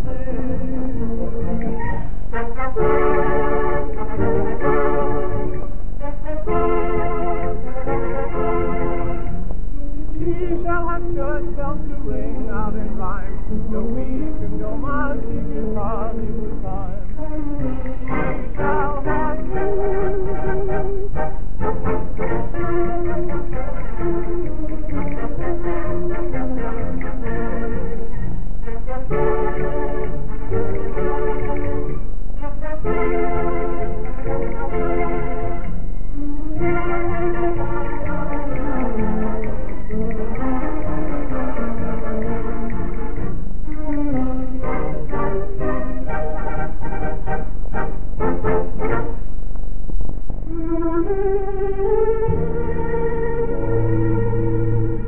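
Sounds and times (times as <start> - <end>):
muffled dance band music: 0.0 - 55.0.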